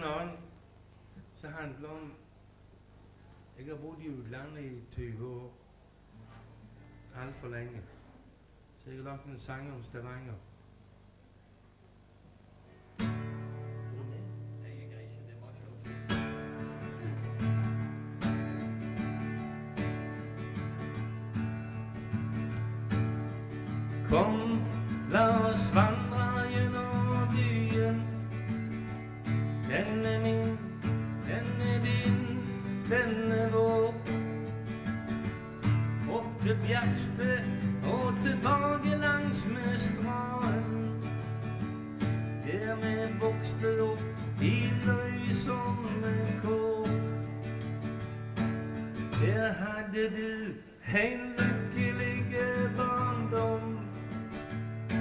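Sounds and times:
acoustic guitar strumming: 12.9s - 15.2s, 15.8s - 55.0s
man singing: 24.0s - 28.4s, 29.6s - 34.6s, 36.0s - 41.1s, 42.4s - 47.3s, 49.1s - 54.0s.

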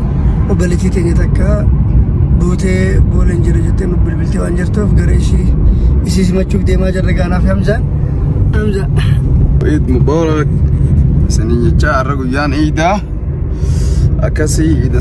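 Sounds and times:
car cabin rumble: 0.0s - 15.0s
man talking: 0.4s - 7.9s, 9.6s - 13.1s.

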